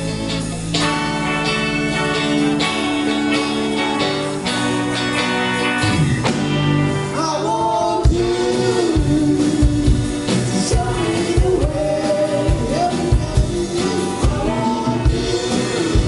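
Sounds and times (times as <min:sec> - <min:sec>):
live band playing: 0:00.0 - 0:16.0
lead vocal singing: 0:07.0 - 0:16.0.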